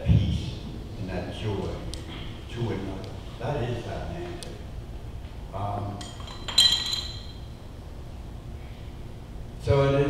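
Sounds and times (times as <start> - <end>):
bright ringing clink: 6.0 - 7.5.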